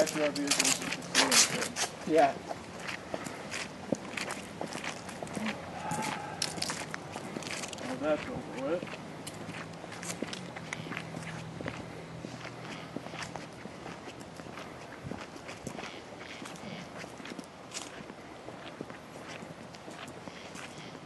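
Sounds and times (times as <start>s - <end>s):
footsteps on a trail: 0.0s - 21.0s.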